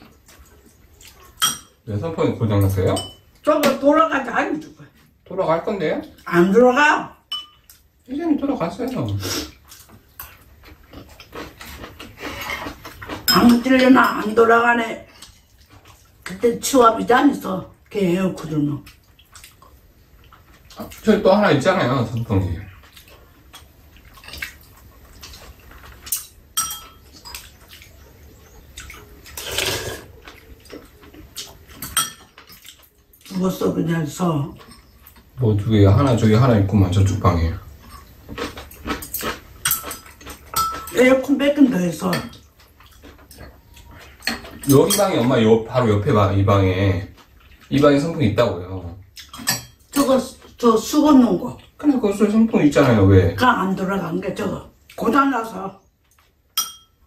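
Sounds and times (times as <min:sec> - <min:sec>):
people chewing and smacking: 0:00.0 - 0:03.9, 0:07.3 - 0:57.0.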